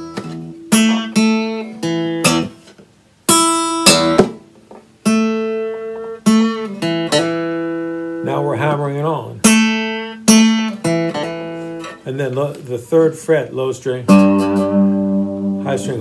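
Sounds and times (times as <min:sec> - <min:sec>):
acoustic guitar blues lick: 0:00.0 - 0:16.0.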